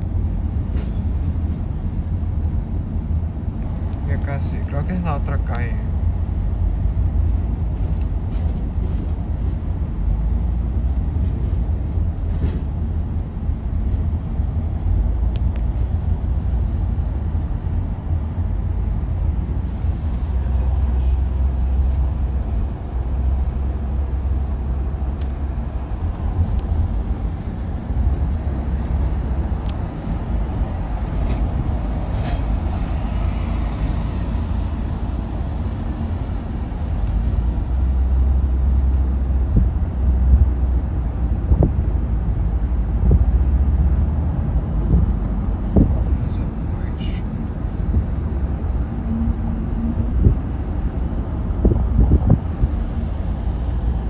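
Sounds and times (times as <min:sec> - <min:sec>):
road and engine rumble in car: 0:00.0 - 0:54.0.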